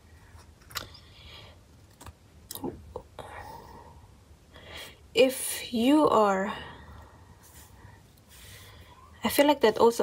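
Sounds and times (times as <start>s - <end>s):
faint murmured hum: 0.0s - 10.0s
intake of breath: 6.6s - 9.1s.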